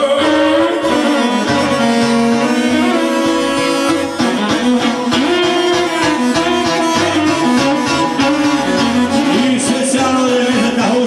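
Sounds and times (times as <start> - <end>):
saz melody: 0.0 - 11.0
violin melody: 0.0 - 11.0
keyboard with steady bass beat: 1.3 - 9.6.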